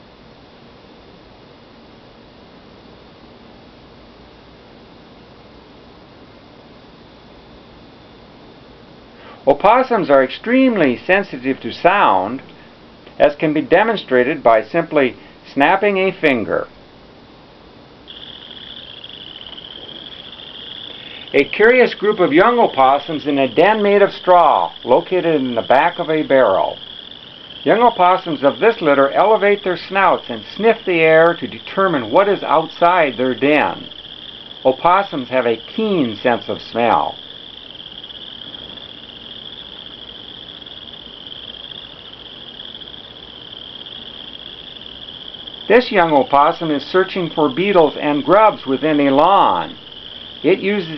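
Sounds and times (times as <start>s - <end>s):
crickets chirring: 0.0s - 50.9s
faint hiss: 0.0s - 50.9s
high-pitched insect trill: 9.2s - 16.7s, 18.1s - 50.9s.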